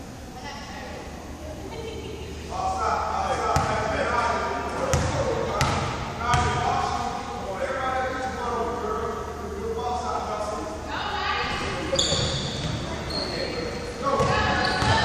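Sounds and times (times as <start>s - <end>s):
voices in large gym: 0.0s - 15.0s.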